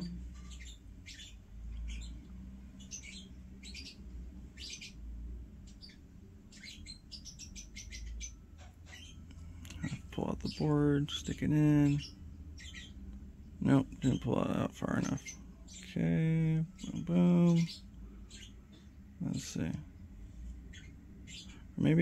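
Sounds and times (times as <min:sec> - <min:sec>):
faint bird chirps: 0:00.0 - 0:22.0
low steady hum: 0:00.0 - 0:22.0.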